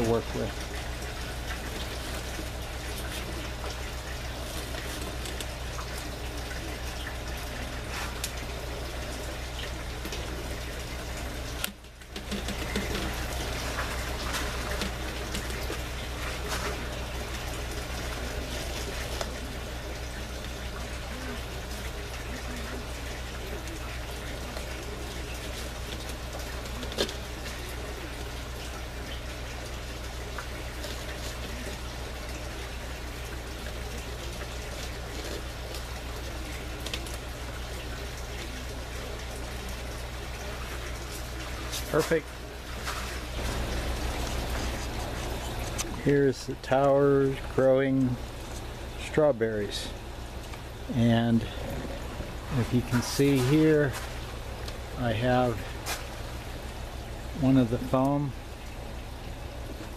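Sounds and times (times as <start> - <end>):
steady low hum: 0.0 - 59.9
water trickling and splashing: 0.0 - 59.9.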